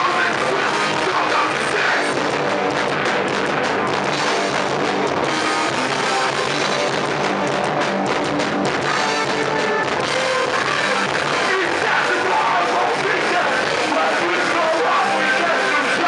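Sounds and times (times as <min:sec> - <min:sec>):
distorted electric guitar: 0:00.0 - 0:16.0
fast drum-kit beats: 0:00.0 - 0:16.0.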